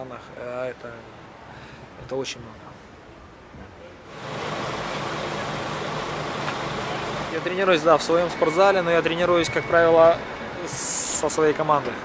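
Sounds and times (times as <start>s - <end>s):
steady machine noise: 4.1s - 10.3s.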